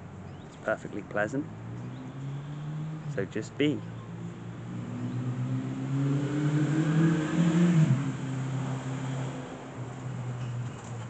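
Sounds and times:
vehicle engine passing by: 1.2 - 11.0.

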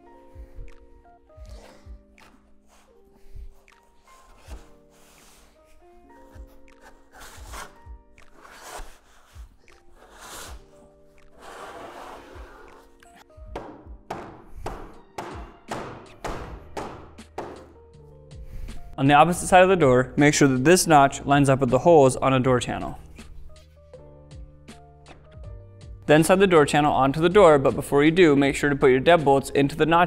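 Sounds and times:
quiet background music: 0.0 - 30.0
metal tube scraping into plastic: 9.9 - 13.1
rubber mallet tapping: 13.5 - 17.8.

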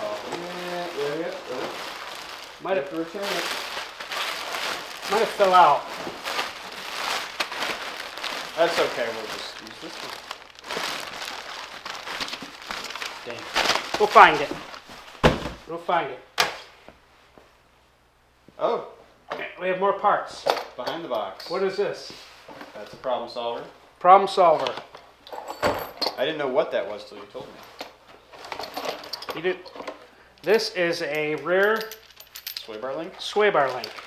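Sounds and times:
plastic packing rustling: 0.0 - 15.7, 31.2 - 34.0.

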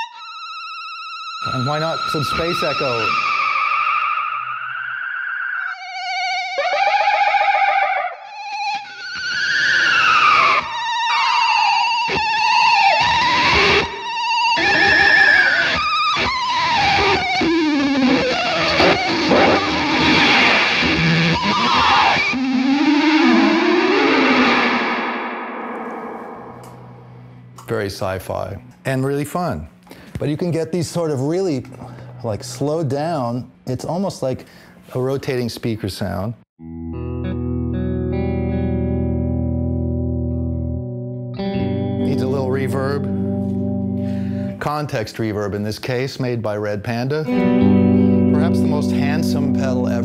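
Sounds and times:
warbling electric guitar with echo: 0.0 - 27.6, 36.6 - 44.6, 47.2 - 50.0.

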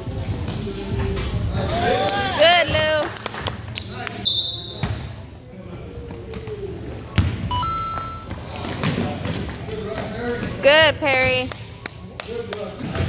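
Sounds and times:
sneakers squeaking: 0.0 - 1.6, 4.2 - 11.4.

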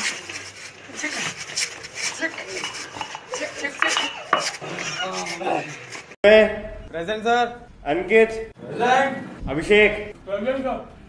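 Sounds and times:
hard objects clinking and clattering: 0.0 - 6.2.

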